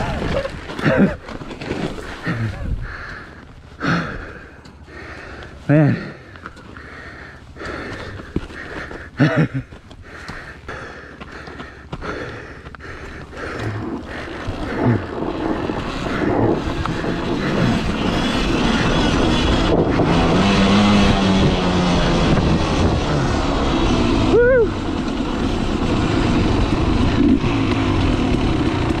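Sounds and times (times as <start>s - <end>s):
two-stroke motorcycle engine: 0.0s - 29.0s.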